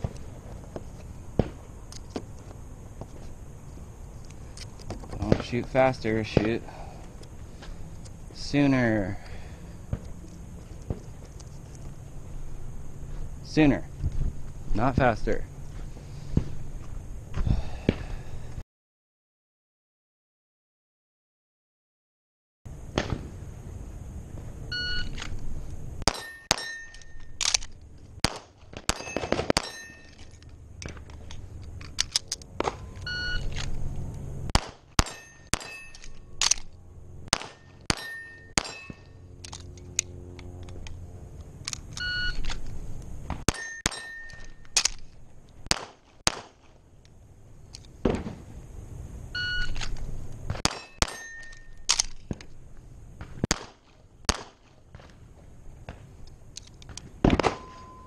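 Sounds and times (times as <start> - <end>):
shot timer beeps: 33.1 - 33.5, 49.4 - 49.8
rapid handgun shots: 34.5 - 35.8, 37.3 - 39.0, 45.7 - 46.7, 53.4 - 54.7.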